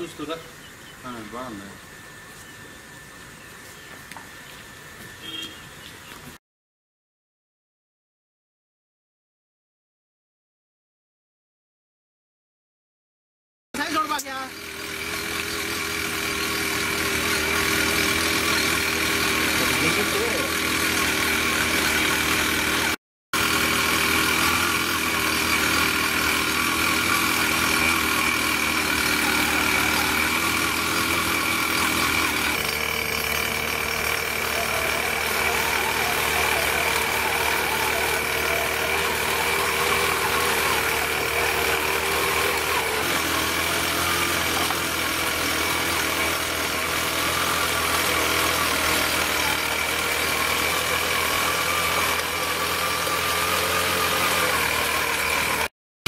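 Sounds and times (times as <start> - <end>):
power weeder engine running: 0.0 - 6.4, 13.8 - 55.7.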